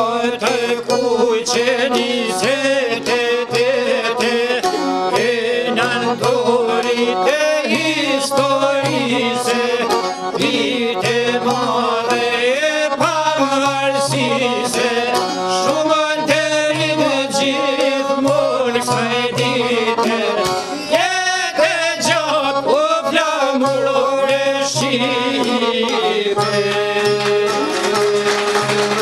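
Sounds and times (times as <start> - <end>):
accordion: 0.0 - 29.0
man singing: 0.0 - 29.0
violin: 0.0 - 29.0.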